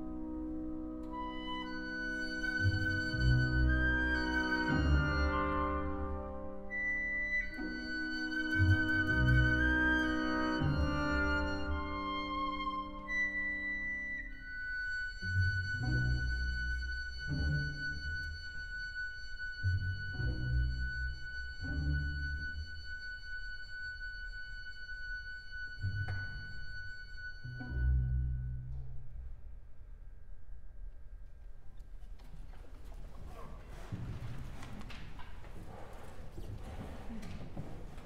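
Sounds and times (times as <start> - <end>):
cellos and double basses low notes: 0.0 - 29.8, 32.3 - 38.0.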